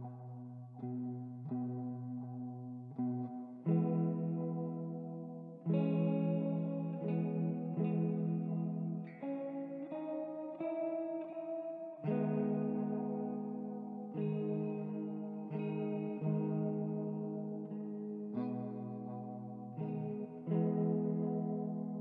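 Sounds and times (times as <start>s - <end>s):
ambient clean guitar: 0.0s - 22.0s.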